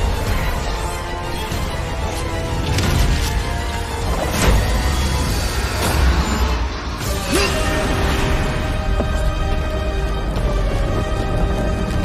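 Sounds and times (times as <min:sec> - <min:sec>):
dramatic music score: 0:00.0 - 0:12.0.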